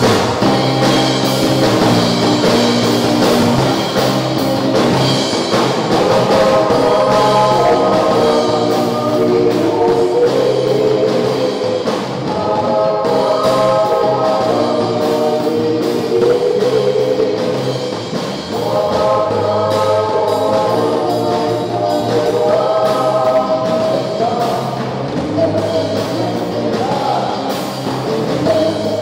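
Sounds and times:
drum kit: 0:00.0 - 0:29.0
electric guitars: 0:00.0 - 0:29.0
group singing gospel song: 0:00.0 - 0:29.0.

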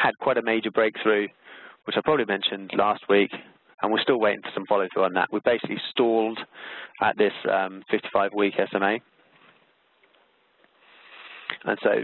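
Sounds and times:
man speaking: 0:00.0 - 0:09.1, 0:11.6 - 0:12.0
man breathing in through nose: 0:01.4 - 0:01.8, 0:06.5 - 0:07.0, 0:10.8 - 0:11.6.

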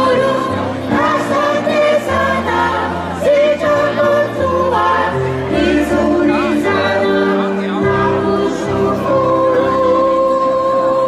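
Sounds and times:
choir singing slow piece: 0:00.0 - 0:11.0.

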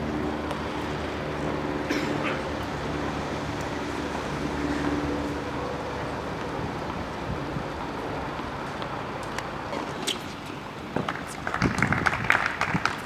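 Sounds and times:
murmur of background noise: 0:00.0 - 0:13.0.

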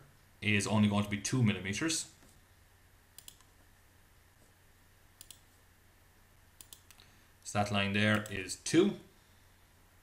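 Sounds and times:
faint computer mouse clicks: 0:03.2 - 0:03.5, 0:05.2 - 0:05.5, 0:06.6 - 0:07.0.

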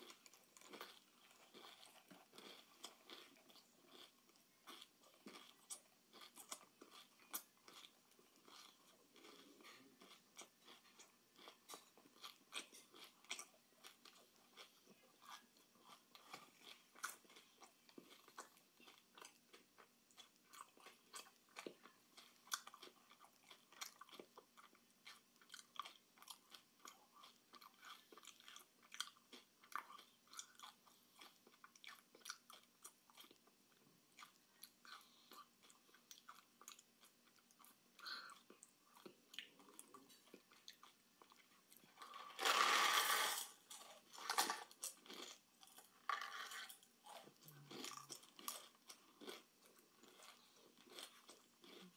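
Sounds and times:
person chewing candy: 0:00.0 - 0:51.9.

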